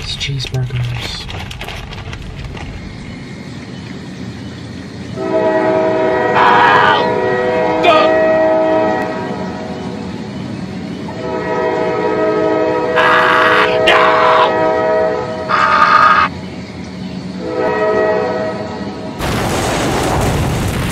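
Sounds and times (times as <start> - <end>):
locomotive horn blast: 5.2 - 9.8, 11.1 - 16.3, 17.4 - 19.0.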